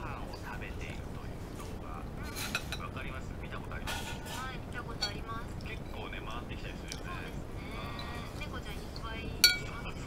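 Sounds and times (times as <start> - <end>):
faint voices: 0.0 - 10.0
metal spoon clinking on ceramic plate: 9.4 - 9.8.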